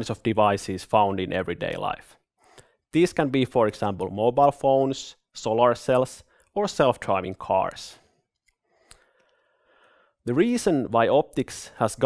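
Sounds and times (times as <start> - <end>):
faint breath: 2.4 - 2.8, 8.0 - 10.2.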